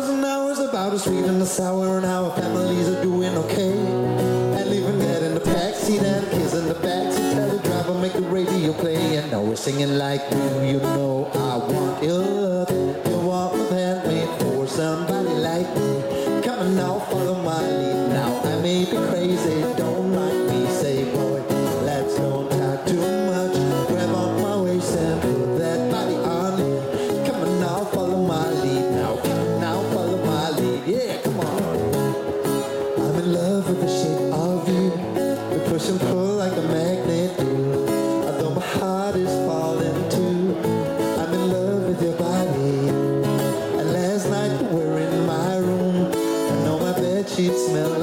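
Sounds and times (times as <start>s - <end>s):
acoustic guitar strumming: 0.0s - 48.0s
person singing: 0.0s - 48.0s.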